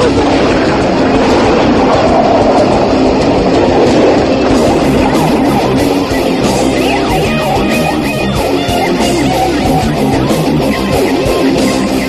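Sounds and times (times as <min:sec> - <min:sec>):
distorted electric guitars: 0:00.0 - 0:12.0
drums: 0:00.0 - 0:12.0.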